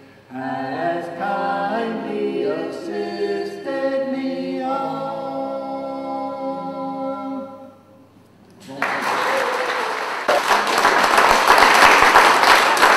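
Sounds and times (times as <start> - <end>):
voices singing in close harmony: 0.3 - 7.9
audience applause: 8.7 - 12.9.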